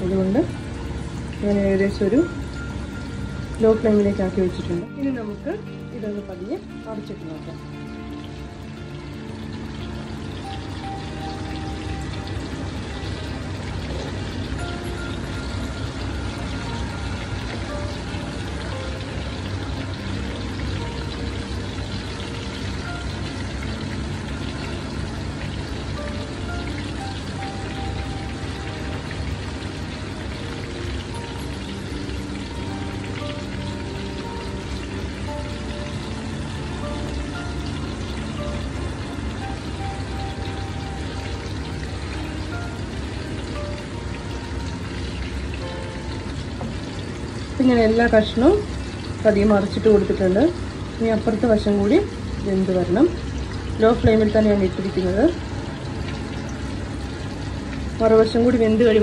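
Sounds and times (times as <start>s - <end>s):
background music: 0.0s - 59.0s
fish sizzling in hot oil: 0.0s - 59.0s.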